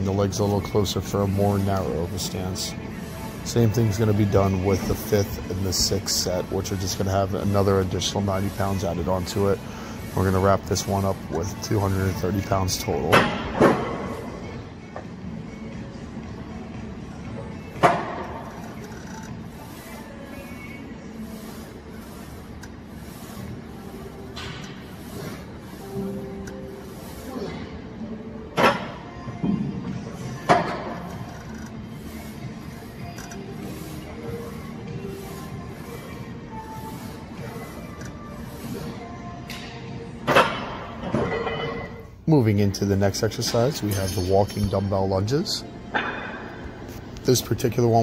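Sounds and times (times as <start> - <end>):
music playing: 0.0 - 48.0.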